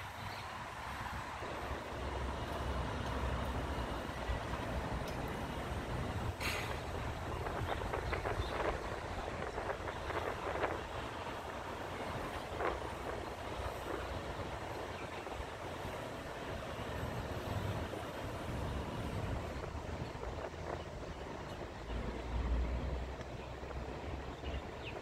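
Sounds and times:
low vehicle engine rumble: 0.0s - 25.0s
street traffic noise: 0.0s - 25.0s.

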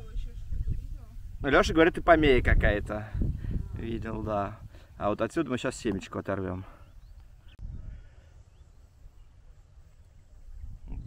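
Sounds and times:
distant bird chirps: 6.5s - 11.0s.

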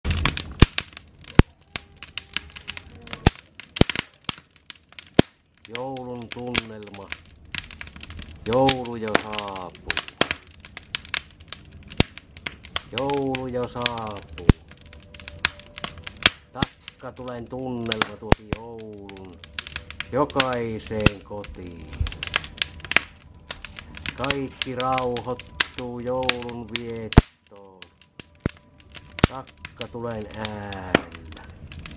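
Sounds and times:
sharp pops from burning logs: 0.0s - 31.9s
wood fire crackling: 0.0s - 31.9s.

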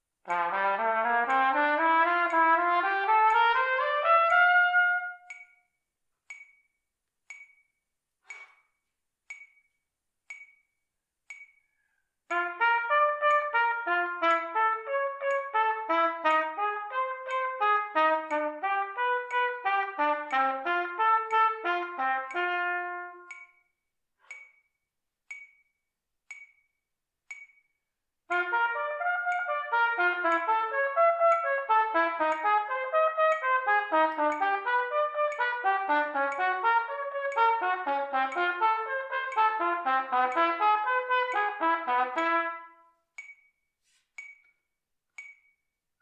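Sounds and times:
metronome clicking: 0.0s - 45.8s.

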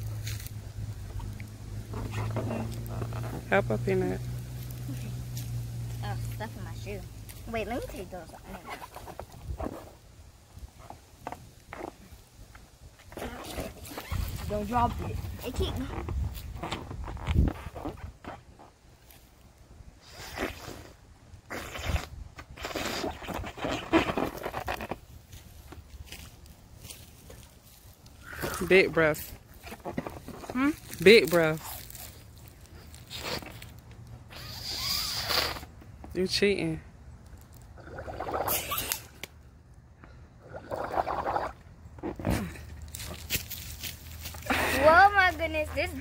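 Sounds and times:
breaths blown into balloon: 20.0s - 24.4s, 34.3s - 35.7s
breath blown into balloon: 34.3s - 35.7s.

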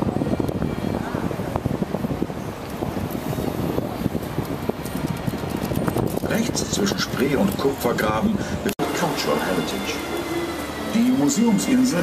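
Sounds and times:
wind buffeting microphone: 0.0s - 8.7s
boat engine rumble: 0.0s - 10.3s.

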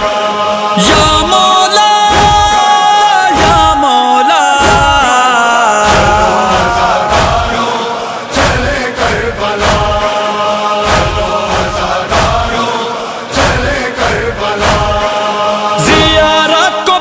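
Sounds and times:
male chorus chanting: 0.0s - 17.0s
chest-beating thuds: 3.3s - 10.0s.

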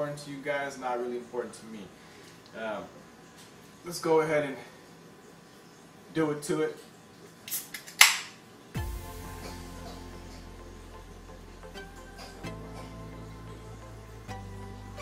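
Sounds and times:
can opening pop and hiss: 7.5s - 8.3s
background music with bass line: 8.8s - 15.0s.

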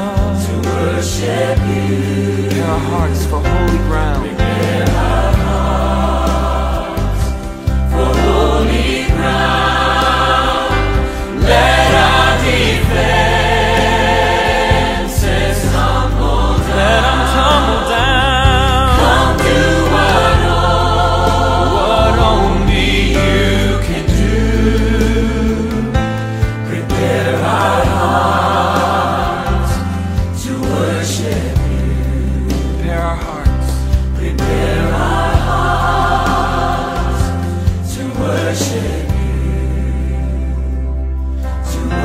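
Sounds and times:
choir singing worship song: 0.0s - 42.0s
instrumental accompaniment: 0.0s - 42.0s.

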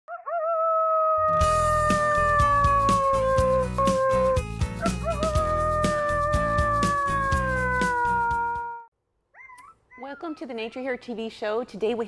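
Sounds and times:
dog howling: 0.1s - 10.3s
theme music with bass and beat: 1.4s - 8.6s.

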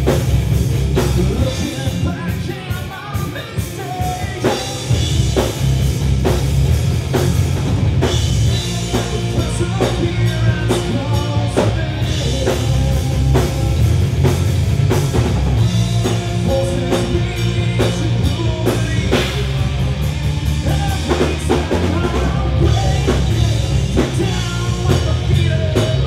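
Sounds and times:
drum kit beat: 0.0s - 26.0s
electric bass: 0.0s - 26.0s
electric guitars: 0.0s - 26.0s.

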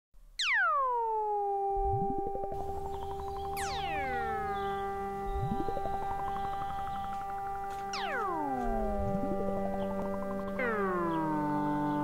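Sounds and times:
synthesizer tone swooping down: 0.4s - 12.0s.

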